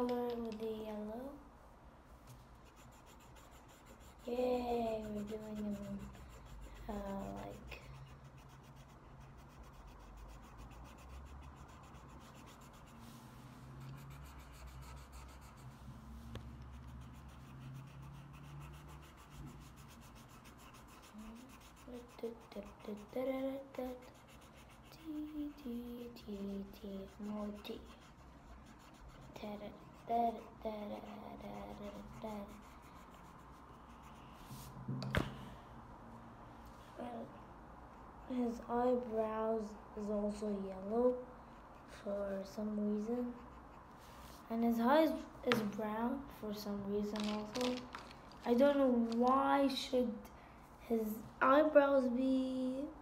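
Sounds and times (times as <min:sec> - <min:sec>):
pencil scratching on paper: 0:02.6 - 0:34.7, 0:41.5 - 0:45.7, 0:47.0 - 0:49.2.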